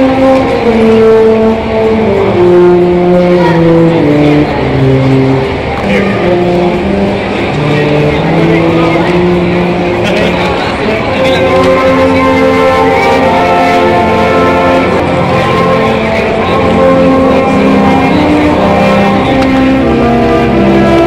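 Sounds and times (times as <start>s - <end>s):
brass band playing slow chords: 0.0s - 21.0s.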